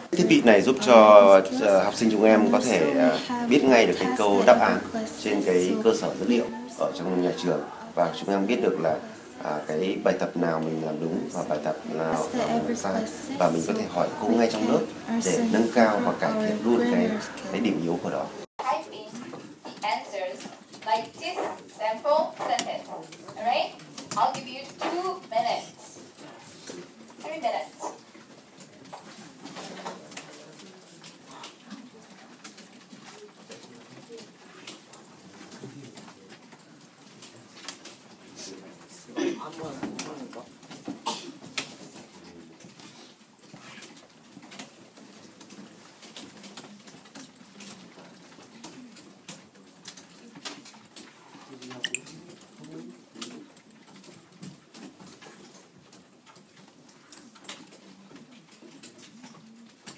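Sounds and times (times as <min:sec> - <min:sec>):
faint low voices: 0:00.0 - 0:43.3
background murmur: 0:00.0 - 0:59.9.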